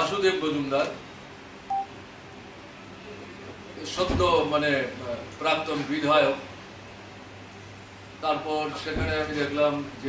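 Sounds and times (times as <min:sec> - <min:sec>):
short electronic beep: 0:01.7 - 0:01.9.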